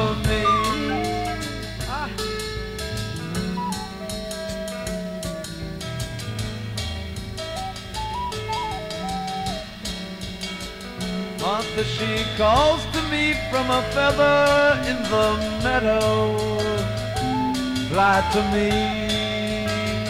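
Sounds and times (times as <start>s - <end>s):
sliding melody line: 0.0s - 2.3s, 3.1s - 5.5s, 7.4s - 9.9s, 16.6s - 19.6s
drum kit beat with cymbals: 0.0s - 20.0s
rock band playing: 0.0s - 20.0s.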